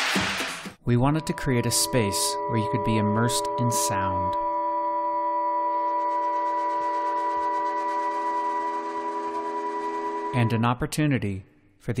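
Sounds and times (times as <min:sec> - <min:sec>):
drone of steady tones: 0:01.1 - 0:10.6.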